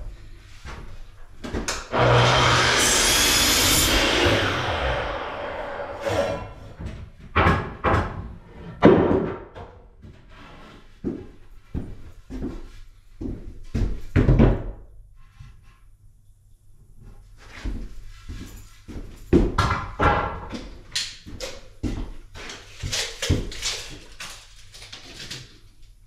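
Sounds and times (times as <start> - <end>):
miter saw cutting wood: 1.9 - 6.8
wooden knocks and thumps: 6.8 - 9.8.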